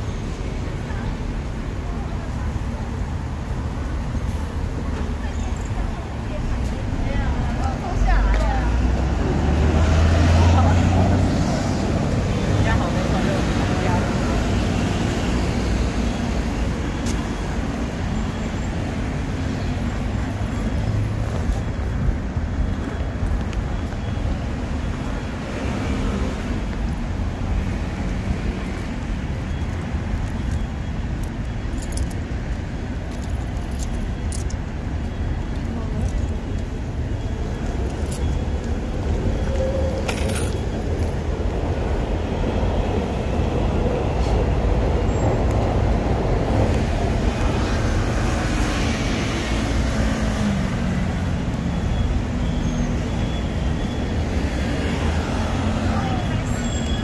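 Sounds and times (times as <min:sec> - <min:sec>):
city street traffic: 0:00.0 - 0:57.0.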